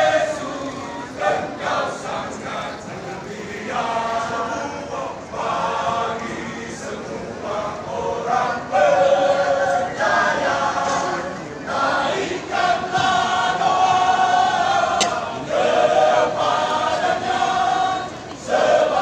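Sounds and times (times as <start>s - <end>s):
male choir singing: 0.0s - 19.0s.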